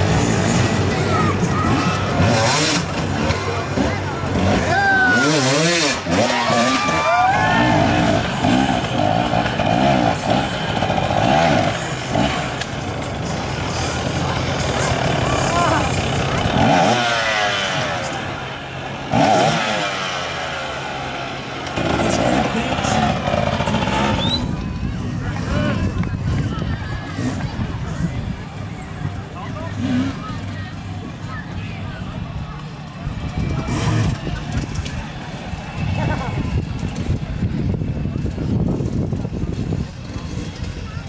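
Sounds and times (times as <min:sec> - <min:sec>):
dirt bike engines revving: 0:00.0 - 0:41.0
people's voices: 0:00.0 - 0:41.0.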